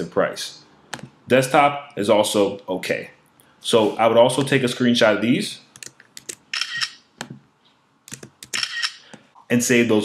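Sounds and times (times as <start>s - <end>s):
camera shutter burst: 8.5s - 9.0s.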